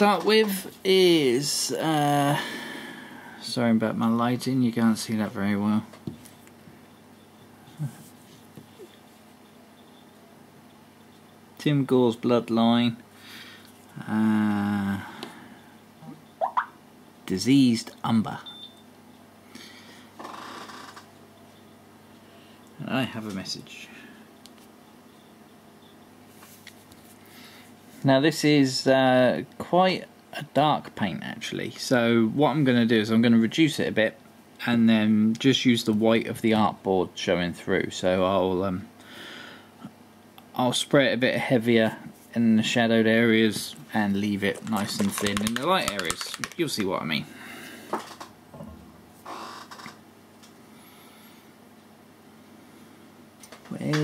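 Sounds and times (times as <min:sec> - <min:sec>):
plastic bottle rustling: 0:44.2 - 0:46.9.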